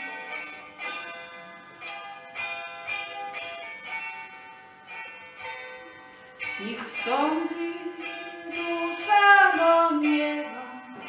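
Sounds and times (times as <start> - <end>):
hammered dulcimer playing: 0.0 - 11.0.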